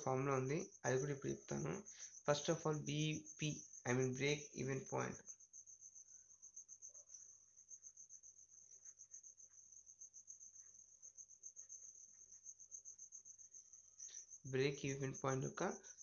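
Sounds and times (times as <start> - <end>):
high pulsing insect trill: 0.0 - 16.0.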